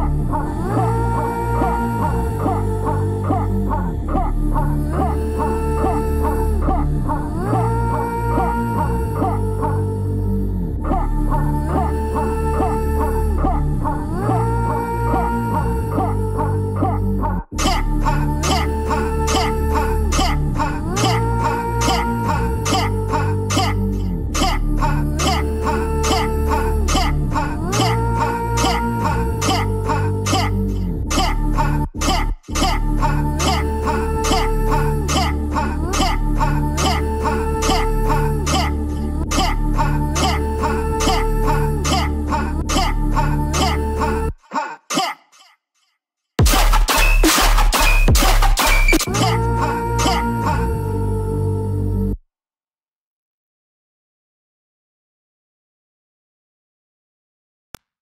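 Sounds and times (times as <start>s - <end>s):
dubstep music: 46.4s - 50.4s.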